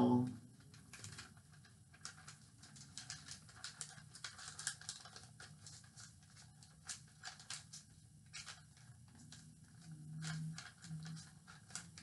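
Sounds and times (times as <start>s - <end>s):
paper rustling and crackling: 0.4s - 12.0s.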